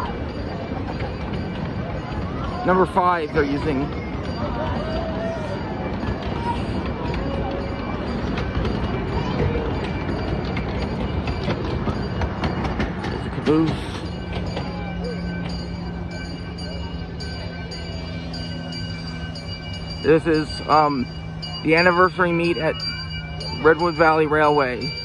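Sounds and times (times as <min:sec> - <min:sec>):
train rumbling and clicking on rails: 0:00.0 - 0:25.0.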